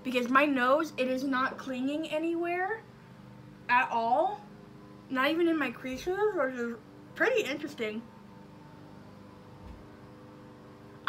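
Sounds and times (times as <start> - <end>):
low electrical hum: 0.0 - 11.0
soft low thump: 9.6 - 9.9.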